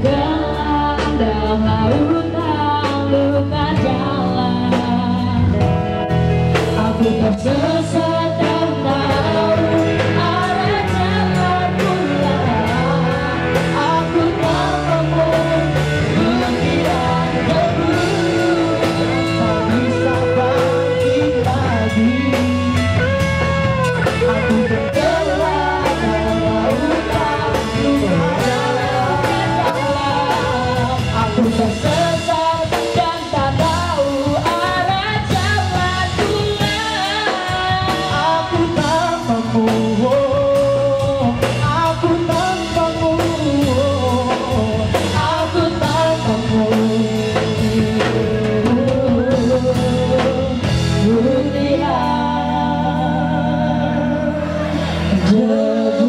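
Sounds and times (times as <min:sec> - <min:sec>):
woman singing: 0:00.0 - 0:05.8, 0:06.5 - 0:56.0
bass guitar: 0:00.0 - 0:56.0
drum kit: 0:00.0 - 0:56.0
electric guitar: 0:00.0 - 0:56.0
man singing: 0:06.6 - 0:56.0.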